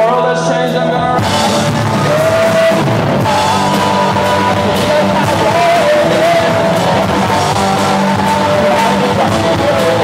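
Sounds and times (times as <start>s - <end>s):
held melody line: 0.0s - 10.0s
punk rock band playing: 0.0s - 10.0s.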